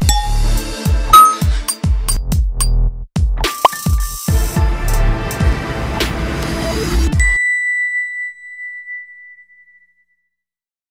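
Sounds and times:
high bell-like ding: 0:00.0 - 0:01.8, 0:07.2 - 0:10.3
electronic music: 0:00.0 - 0:01.9.

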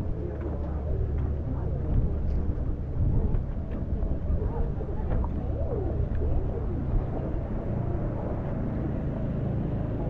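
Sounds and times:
wind on microphone: 0:00.0 - 0:09.4
faint voices: 0:00.0 - 0:10.0
outboard motor rumble: 0:00.0 - 0:10.0.

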